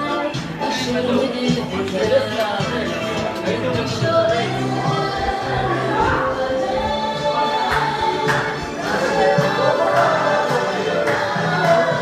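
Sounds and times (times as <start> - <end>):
crowd singing in unison: 0.0 - 12.0.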